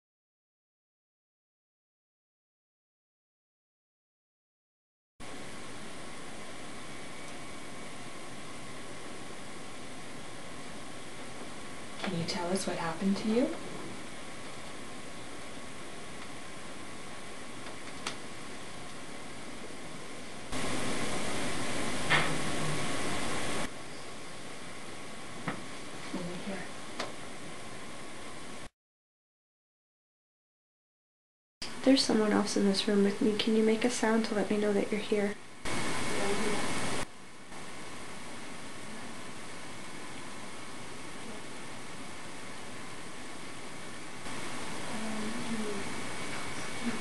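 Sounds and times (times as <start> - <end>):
recorder hiss: 5.2 - 28.7, 31.6 - 47.0.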